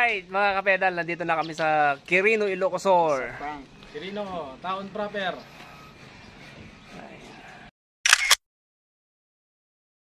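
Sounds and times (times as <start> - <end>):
faint outdoor background: 0.0 - 8.4
camera shutter click: 8.0 - 8.4.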